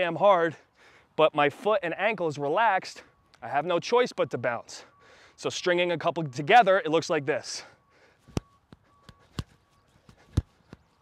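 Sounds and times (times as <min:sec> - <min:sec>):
sneakers striking artificial turf: 0:08.3 - 0:10.9.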